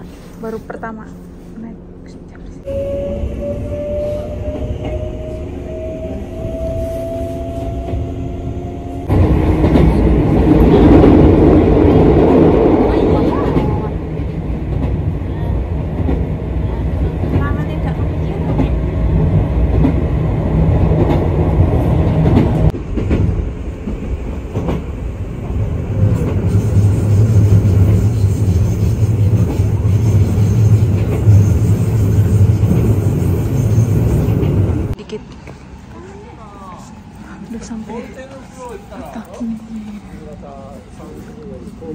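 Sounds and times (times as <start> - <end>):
moving train running noise: 0.0 - 41.9
train motor whine: 2.6 - 9.9.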